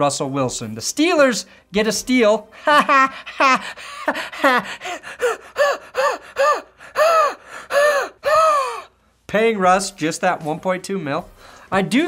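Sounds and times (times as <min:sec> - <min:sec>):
man laughing hard: 0:02.6 - 0:08.8.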